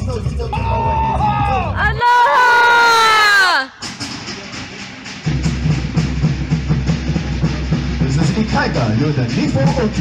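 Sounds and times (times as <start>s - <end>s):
loud fast drum beat: 2.8s - 10.0s.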